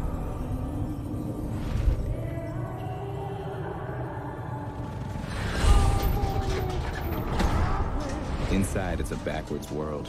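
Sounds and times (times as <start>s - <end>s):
creaking metallic tones: 0.0s - 10.0s
film music: 0.0s - 10.0s.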